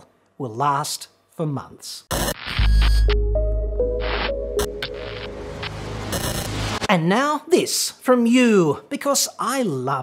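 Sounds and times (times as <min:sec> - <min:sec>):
burst of static: 0:02.1 - 0:03.0, 0:04.0 - 0:06.9
held synth notes: 0:03.1 - 0:06.9
deep bass drone: 0:03.2 - 0:06.9.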